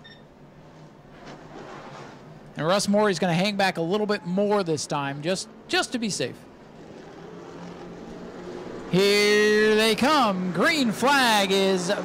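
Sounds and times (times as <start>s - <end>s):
stock cars droning slowly: 0.3s - 12.0s.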